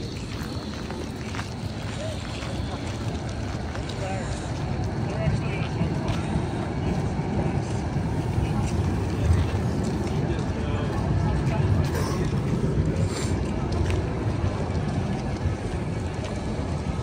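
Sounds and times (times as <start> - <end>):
tram rolling past: 0.0 - 17.0
voices of passers-by: 0.0 - 17.0.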